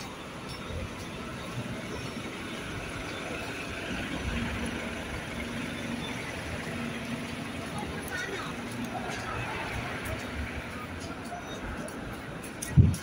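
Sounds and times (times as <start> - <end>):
bus engine rumbling: 0.0 - 13.0
street noise: 0.0 - 13.0.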